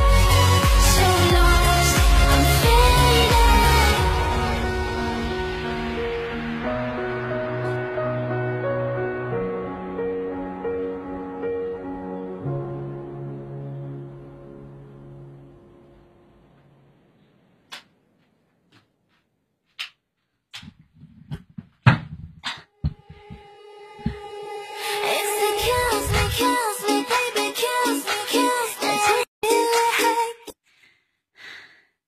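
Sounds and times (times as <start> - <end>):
woman singing song: 0.0 - 5.3, 23.0 - 30.6
dance music: 0.0 - 6.8, 22.9 - 30.6
woman breathing heavily: 30.6 - 32.0.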